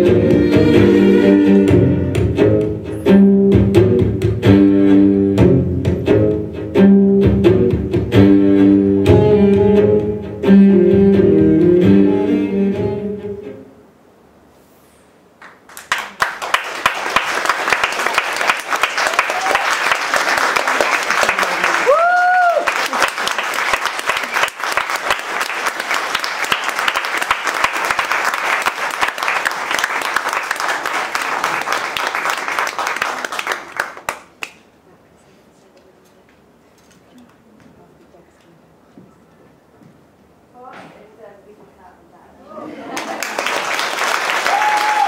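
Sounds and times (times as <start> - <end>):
audience applauding: 15.4 - 34.6, 42.8 - 45.0.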